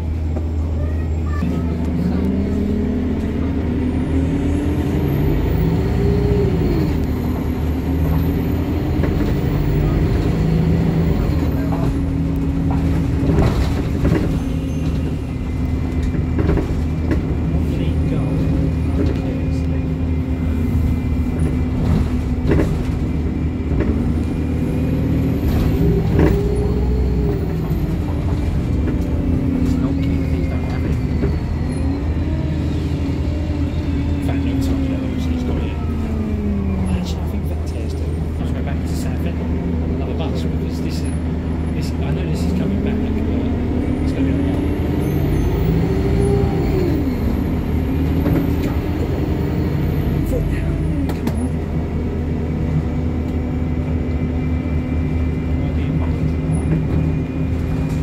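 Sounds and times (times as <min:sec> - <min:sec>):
bus engine hum: 0:00.0 - 0:58.0.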